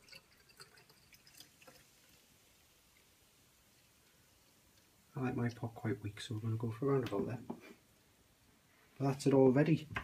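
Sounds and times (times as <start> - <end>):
faint liquid drips: 0.0 - 9.1.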